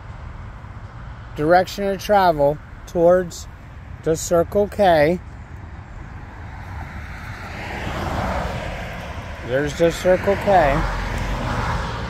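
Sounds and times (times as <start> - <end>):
vehicle passing by: 6.2 - 12.0.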